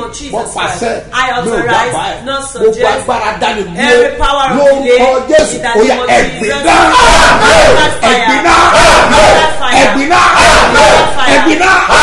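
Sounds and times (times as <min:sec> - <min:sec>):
man praying loudly: 0:00.0 - 0:12.0.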